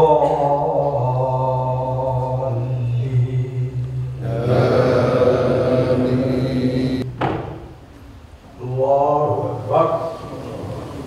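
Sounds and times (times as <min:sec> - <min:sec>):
man chanting: 0:00.0 - 0:07.1.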